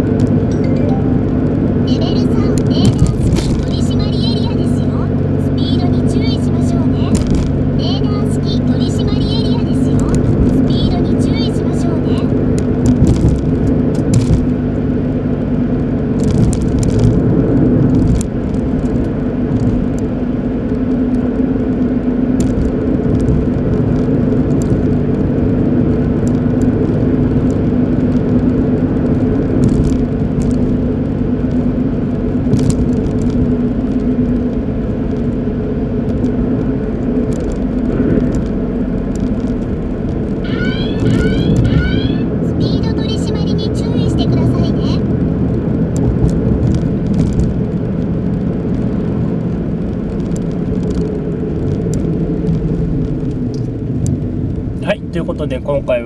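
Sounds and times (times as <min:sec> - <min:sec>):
car engine hum and road noise: 0:00.0 - 0:56.0.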